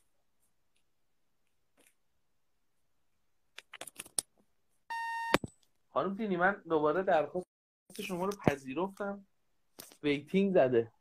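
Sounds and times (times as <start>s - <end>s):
phone electronic beep: 4.9s - 5.5s.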